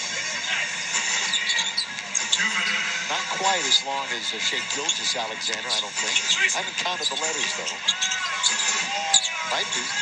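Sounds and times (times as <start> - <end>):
arena crowd noise: 0.0 - 10.0
shoes squeaking on hardwood: 1.0 - 2.9, 4.7 - 10.0.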